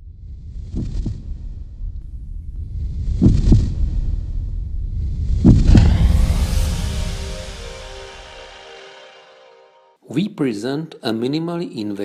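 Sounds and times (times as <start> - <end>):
low rumble: 0.0 - 9.6
heartbeat thumps: 3.2 - 3.7, 5.4 - 5.8.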